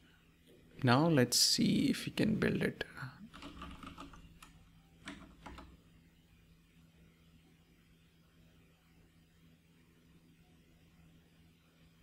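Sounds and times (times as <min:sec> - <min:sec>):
computer keyboard typing: 0:03.3 - 0:05.8.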